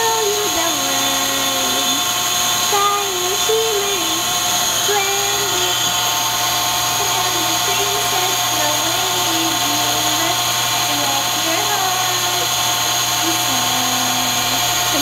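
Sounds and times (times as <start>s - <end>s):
electrical whine and hum: 0.0s - 15.0s.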